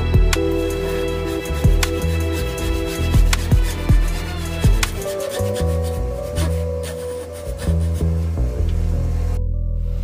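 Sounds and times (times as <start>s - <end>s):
background music: 0.0s - 10.0s
hand saw cutting wood: 0.7s - 8.2s.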